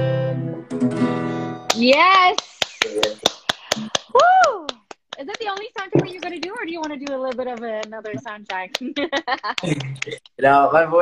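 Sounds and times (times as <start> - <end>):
person clapping: 1.7 - 10.4.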